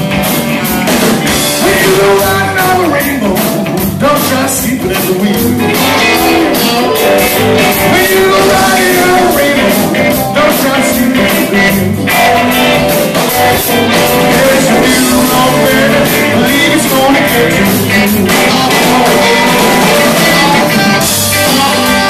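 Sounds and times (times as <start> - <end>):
bass guitar: 0.0 - 22.0
electric guitar: 0.0 - 22.0
keyboard: 0.0 - 22.0
steady drum beat: 0.0 - 22.0.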